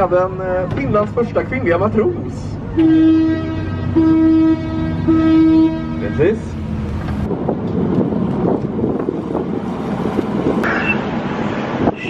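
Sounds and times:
horn blasts: 2.8s - 6.2s.

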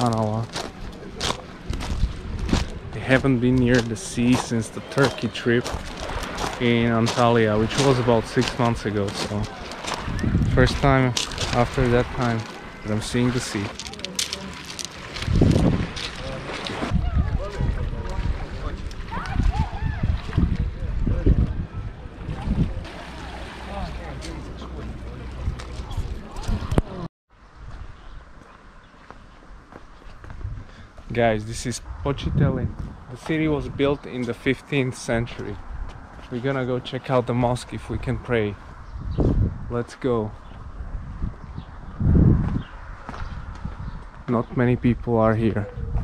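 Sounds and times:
wind gusting on microphone: 1.2s - 4.5s, 5.2s - 13.8s, 14.7s - 23.0s, 29.5s - 36.4s, 37.2s - 46.0s
small waves lapping: 4.2s - 10.2s, 10.8s - 20.7s, 22.2s - 26.4s.

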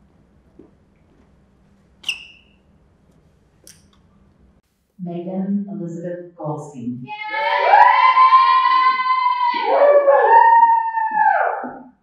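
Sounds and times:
sneaker squeak on hard floor: 2.0s - 2.6s.

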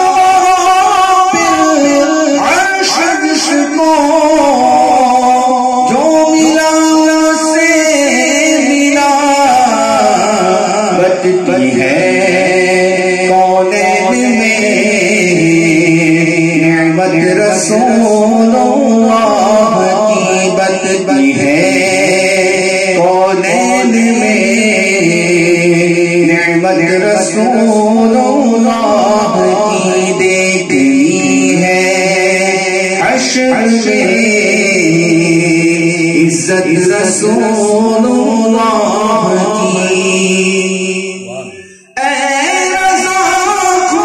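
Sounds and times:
man singing into microphone: 0.0s - 44.0s.

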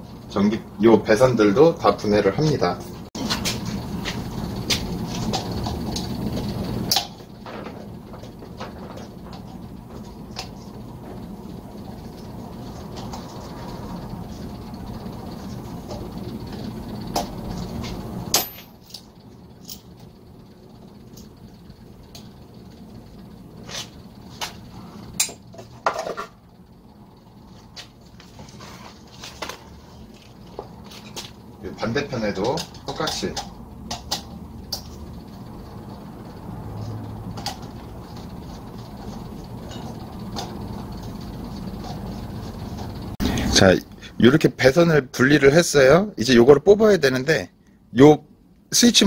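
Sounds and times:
low steady hum: 0.0s - 49.0s.

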